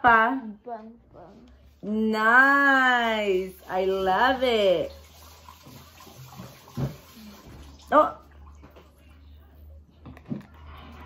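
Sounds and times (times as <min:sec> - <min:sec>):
faint low hum: 0:07.3 - 0:11.0.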